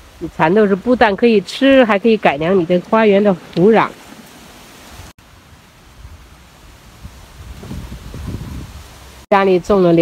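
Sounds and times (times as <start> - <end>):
wind rumble on microphone: 5.0 - 9.8.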